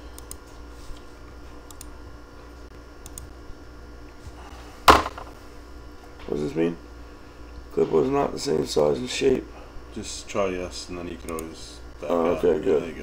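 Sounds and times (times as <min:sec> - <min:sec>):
room hum: 0:00.0 - 0:13.0
sharp knock: 0:04.9 - 0:05.3.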